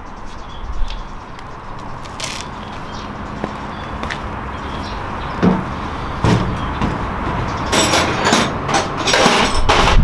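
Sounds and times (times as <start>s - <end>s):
tools clunking and rattling on motorcycle: 5.4s - 10.0s.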